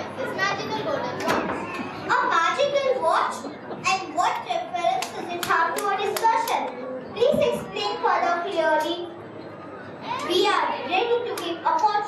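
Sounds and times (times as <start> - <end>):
child speaking: 0.0 - 9.2, 10.0 - 12.0.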